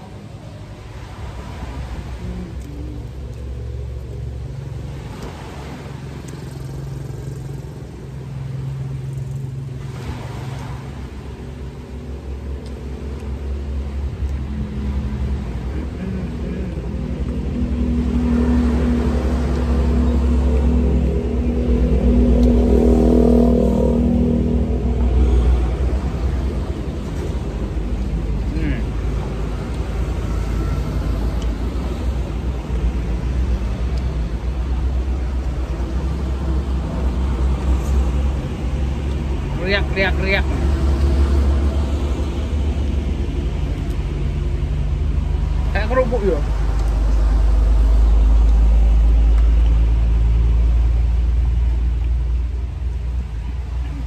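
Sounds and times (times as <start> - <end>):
diesel truck engines running: 0.0 - 54.0.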